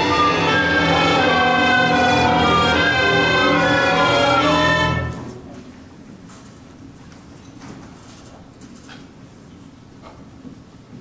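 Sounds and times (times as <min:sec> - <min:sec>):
steady low hum: 0:00.0 - 0:07.1.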